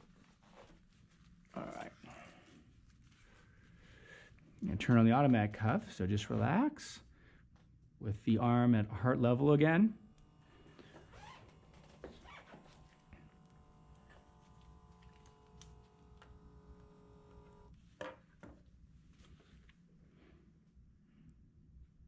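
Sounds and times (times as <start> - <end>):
small pump motor humming: 10.2 - 17.7.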